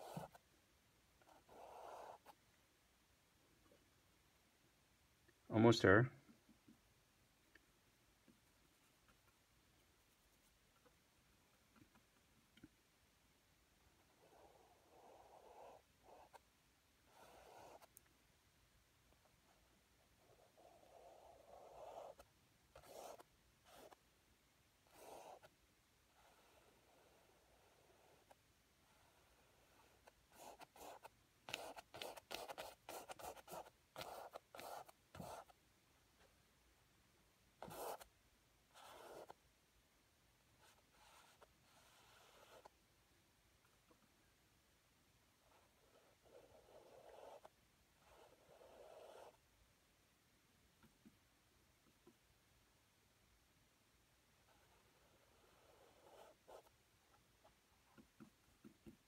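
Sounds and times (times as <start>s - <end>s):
brush stroking paint on canvas: 0.0s - 0.5s, 17.1s - 18.0s, 26.2s - 35.6s, 37.6s - 38.1s, 40.6s - 42.8s, 45.5s - 49.4s, 54.5s - 56.8s.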